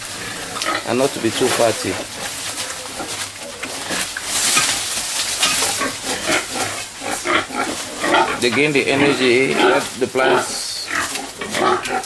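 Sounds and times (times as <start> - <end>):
leaves rustling and crunching: 0.0 - 12.0
pig calls: 0.1 - 12.0.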